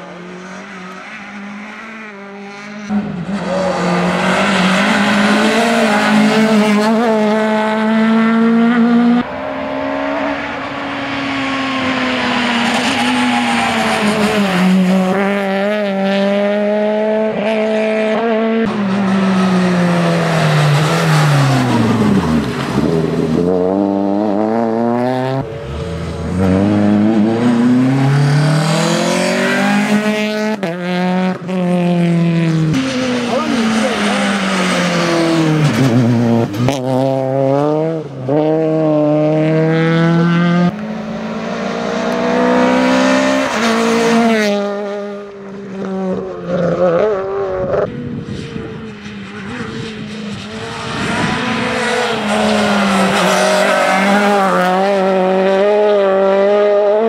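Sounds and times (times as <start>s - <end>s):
rally car engine revving: 0.0s - 57.0s.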